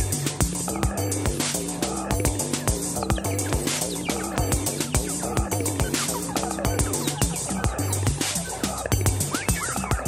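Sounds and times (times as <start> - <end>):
electronic kick beat: 0.0 - 10.0
pulsing synth bassline: 0.0 - 10.0.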